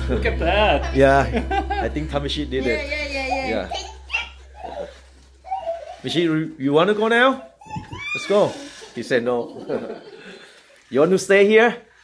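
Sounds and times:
low steady hum: 0:00.0 - 0:06.6
people laughing softly: 0:08.8 - 0:10.9.

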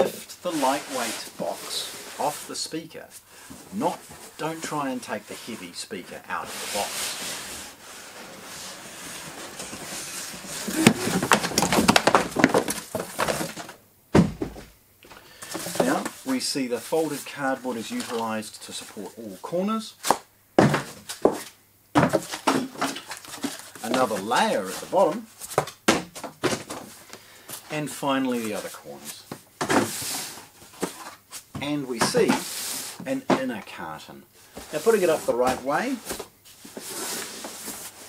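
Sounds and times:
cardboard rustling: 0:00.0 - 0:02.6, 0:03.5 - 0:14.7, 0:15.3 - 0:19.2, 0:20.0 - 0:33.6, 0:34.5 - 0:38.0
cardboard scraping: 0:00.0 - 0:02.7, 0:03.5 - 0:13.8, 0:15.4 - 0:18.3, 0:20.0 - 0:33.5, 0:34.5 - 0:38.0.

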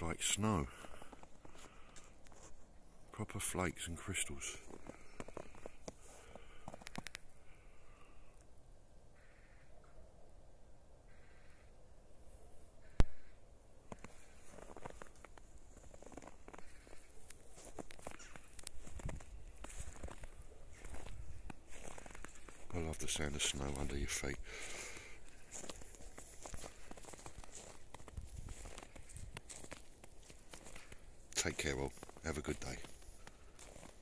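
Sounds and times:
footsteps crunching in snow: 0:00.0 - 0:02.7, 0:03.6 - 0:07.3, 0:13.9 - 0:34.0
bird calling: 0:18.0 - 0:18.6.

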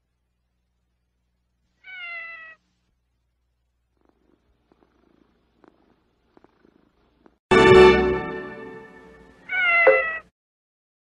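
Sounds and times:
kitten meowing: 0:09.5 - 0:10.2.

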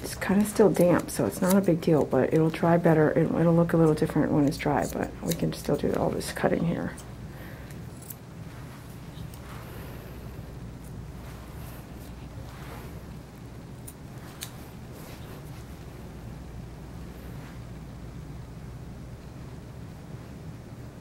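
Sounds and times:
grooming shears snipping: 0:00.0 - 0:07.1, 0:13.8 - 0:15.7
steady low hum: 0:00.0 - 0:21.0.

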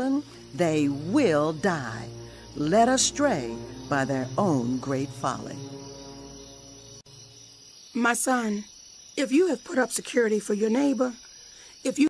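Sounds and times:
person reading aloud: 0:00.0 - 0:05.6, 0:08.0 - 0:08.6, 0:09.2 - 0:11.2
sustained music chord: 0:00.0 - 0:07.4.

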